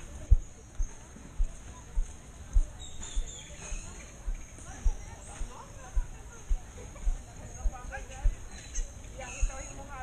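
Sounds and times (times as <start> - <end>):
footsteps on dirt: 0.0 - 10.0.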